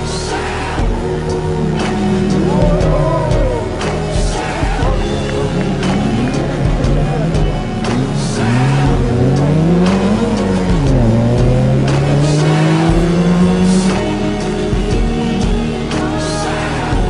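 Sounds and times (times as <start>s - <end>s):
background music with steady beat: 0.0s - 17.0s
rally car engine revving: 0.0s - 17.0s.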